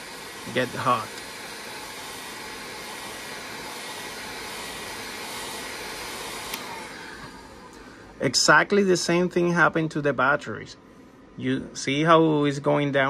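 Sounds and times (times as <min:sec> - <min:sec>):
heat gun blowing hot air: 0:00.0 - 0:08.2
small click: 0:06.5 - 0:06.7.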